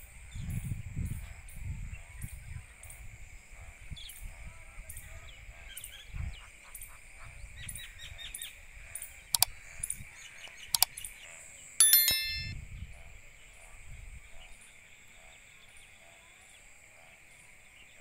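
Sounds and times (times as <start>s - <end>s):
sharp clicks: 10.5s - 10.9s
bell ding: 11.8s - 12.6s.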